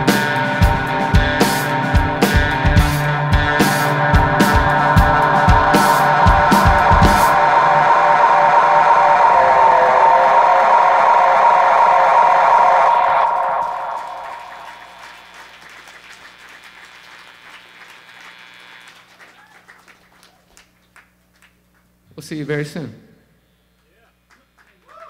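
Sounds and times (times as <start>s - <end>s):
electric guitar chord ringing: 0.0s - 15.5s
drum hits: 2.0s - 7.8s.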